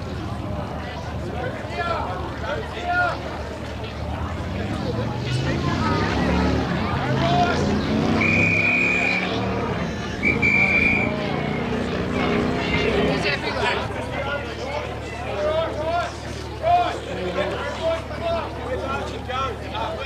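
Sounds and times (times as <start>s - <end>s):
spectators shouting: 5.3s - 20.0s
whistle blasts: 8.2s - 9.4s, 10.2s - 11.2s.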